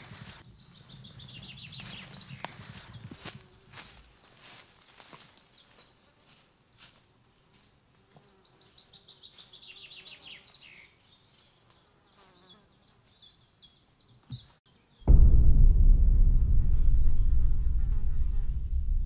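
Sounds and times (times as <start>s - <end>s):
birdsong trill: 0.0s - 7.0s
soft low knock: 15.1s - 19.0s.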